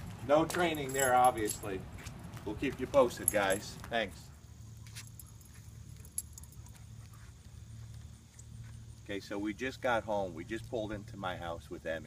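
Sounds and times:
steady low hum: 0.0 - 12.0
dog collar tags jingling: 0.4 - 1.8, 2.9 - 3.8, 5.0 - 6.8.

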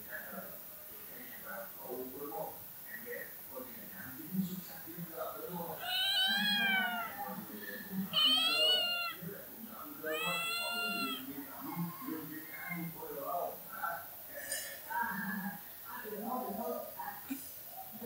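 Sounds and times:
cat meowing: 5.8 - 7.3, 8.1 - 9.2, 10.0 - 11.3.

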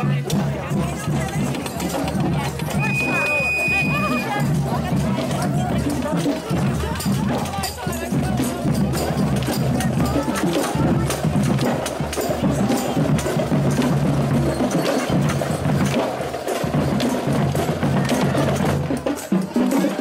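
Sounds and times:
crowd talking: 0.0 - 20.0
hand percussion knocks and clicks: 0.0 - 20.0.

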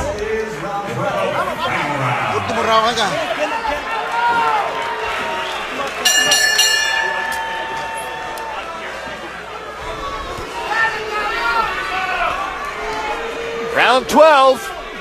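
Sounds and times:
arena crowd noise: 0.0 - 15.0
boxing ring bell: 6.0 - 9.1.

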